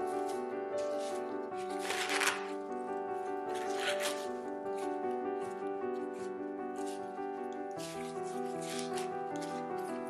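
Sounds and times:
corn husks tearing: 0:00.0 - 0:02.6, 0:03.5 - 0:07.1, 0:07.7 - 0:10.0
background music: 0:00.0 - 0:10.0.

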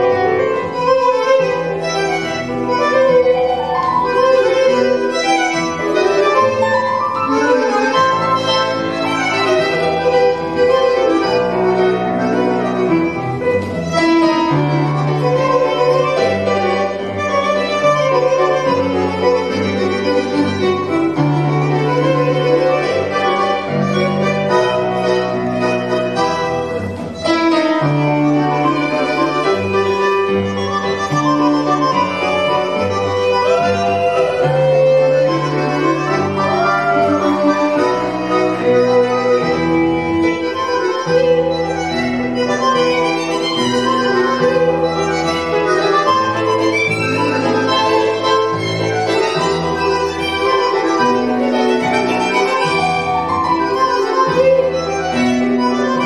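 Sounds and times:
accordion-like reeds: 0:00.0 - 0:56.0
bandoneon: 0:00.0 - 0:56.0
double bass notes: 0:00.0 - 0:56.0
piano: 0:00.0 - 0:56.0
violin melody: 0:00.0 - 0:56.0.

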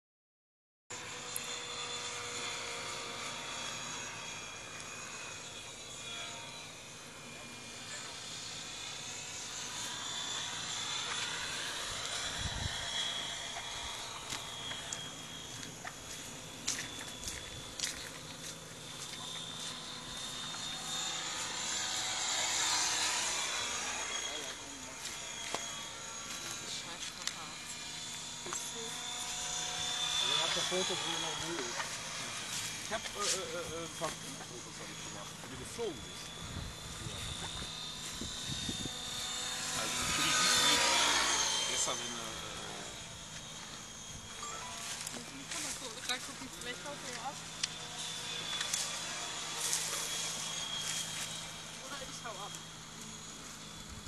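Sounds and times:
model aircraft motor whine: 0:00.9 - 0:54.0.

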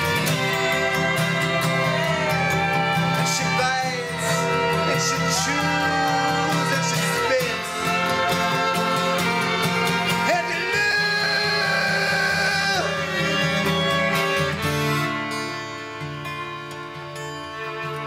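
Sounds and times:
acoustic guitar: 0:00.0 - 0:18.0
fiddle: 0:00.0 - 0:18.0
flute: 0:00.0 - 0:18.0.

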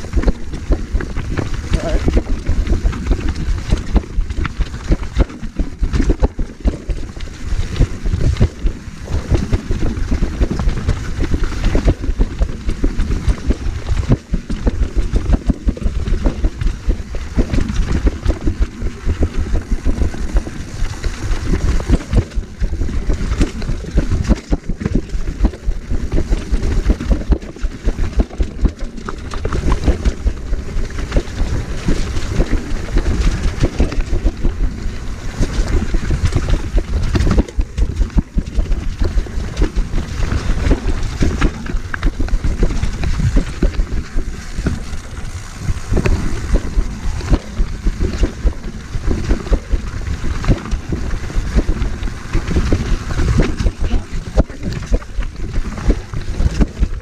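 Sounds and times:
bike rattling over jolts: 0:00.0 - 0:57.0
wind buffeting microphone: 0:00.0 - 0:57.0.

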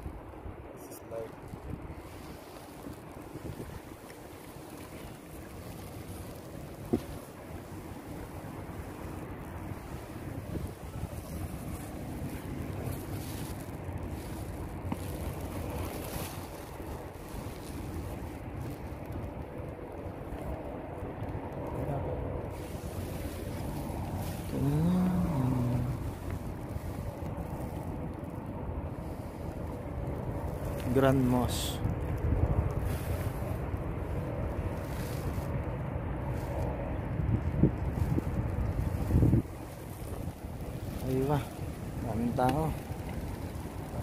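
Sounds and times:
water noise: 0:00.0 - 0:44.0
wind noise on microphone: 0:00.0 - 0:44.0
boat motor running: 0:21.7 - 0:31.1.

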